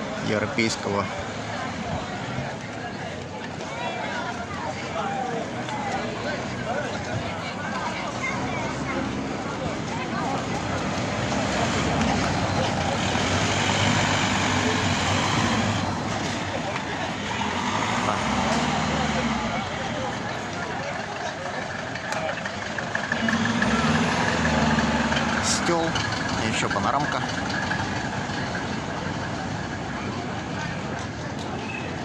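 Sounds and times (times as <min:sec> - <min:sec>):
people chattering: 0:00.0 - 0:32.0
vehicle engine humming: 0:04.8 - 0:32.0.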